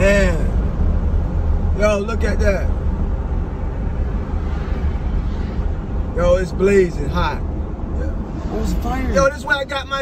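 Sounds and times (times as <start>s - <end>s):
vehicle road and engine noise: 0.0s - 10.0s.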